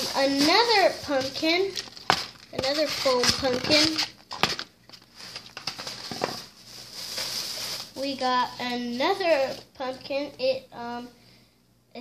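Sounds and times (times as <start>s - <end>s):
plastic bag rustling: 0.0s - 9.7s.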